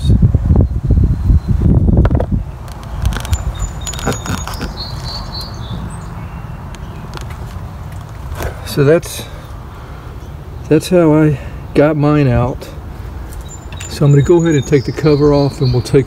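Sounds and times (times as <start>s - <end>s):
wind buffeting microphone: 0.0s - 8.6s
microphone handling noise: 1.2s - 5.1s.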